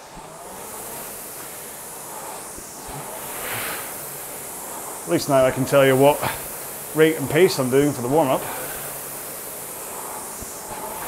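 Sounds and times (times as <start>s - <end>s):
rowing machine flywheel whirring: 0.0s - 11.0s.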